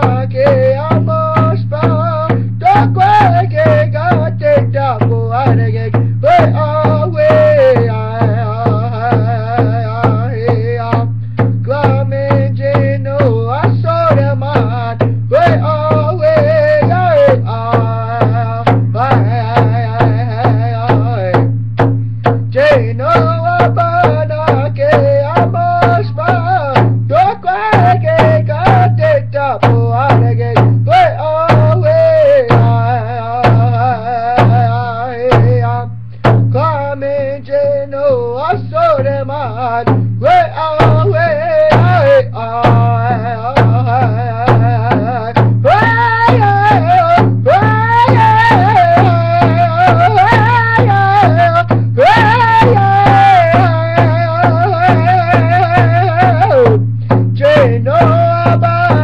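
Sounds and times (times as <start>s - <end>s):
drumbeat struck with a stick: 0.0s - 36.7s, 39.6s - 59.0s
man singing: 0.0s - 59.0s.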